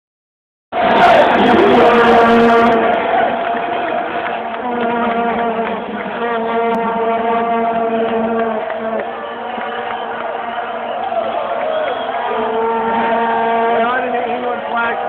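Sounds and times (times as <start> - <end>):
crowd cheering and chanting: 0.7 - 15.0
vuvuzelas blowing: 0.8 - 15.0.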